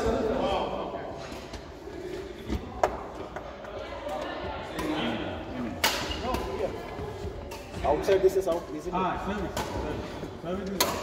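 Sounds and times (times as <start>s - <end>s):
racket hitting shuttlecock: 5.8s - 6.6s, 10.7s - 11.0s.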